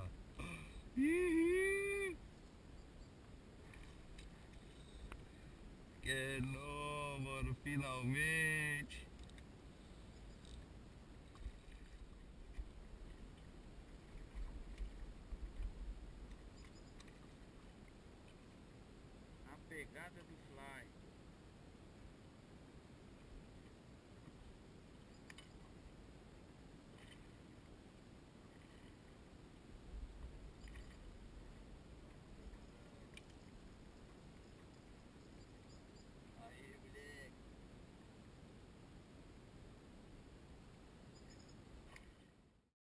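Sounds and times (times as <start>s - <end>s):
faint distant call: 0.0s - 2.2s
water noise around boat: 0.0s - 42.6s
low rumbling wind: 8.9s - 16.5s.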